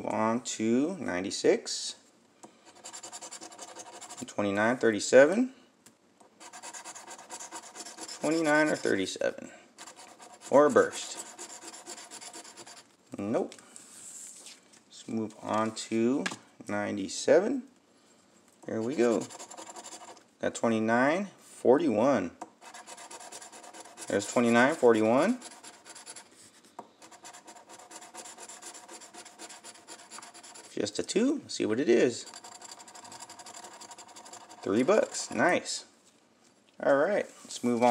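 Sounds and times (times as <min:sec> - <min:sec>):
coin scratching a ticket: 0:02.7 - 0:04.3, 0:06.4 - 0:09.1, 0:09.8 - 0:12.8, 0:18.8 - 0:20.2, 0:22.6 - 0:26.3, 0:27.0 - 0:30.8, 0:32.1 - 0:35.5
coin scraping lottery ticket: 0:06.4 - 0:09.0, 0:18.8 - 0:20.2, 0:32.2 - 0:35.4.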